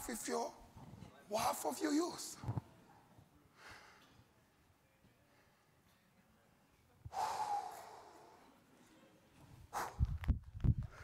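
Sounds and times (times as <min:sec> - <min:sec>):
person's sharp breathy exhale: 0:07.1 - 0:08.4.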